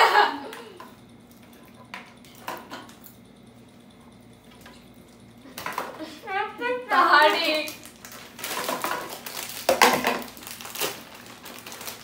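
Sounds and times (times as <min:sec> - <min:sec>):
popcorn rattling: 0:06.9 - 0:12.0
plastic boxes clattering: 0:08.4 - 0:11.0.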